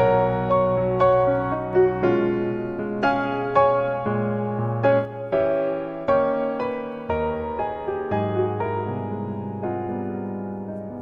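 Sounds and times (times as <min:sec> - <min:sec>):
soft solo piano music: 0:00.0 - 0:11.0.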